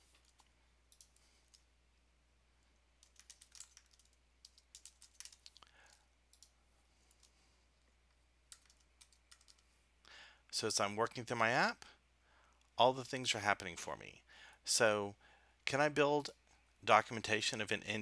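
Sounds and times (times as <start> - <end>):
faint keyboard typing: 0.0 - 1.8, 2.6 - 9.9.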